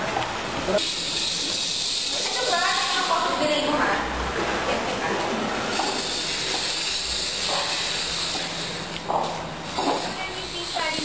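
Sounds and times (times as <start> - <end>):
high-pitched hiss: 0.8 - 3.7, 9.7 - 11.0.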